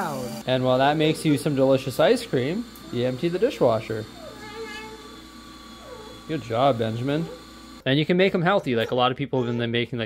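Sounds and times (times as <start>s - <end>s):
toddler vocalizing: 4.1s - 5.2s.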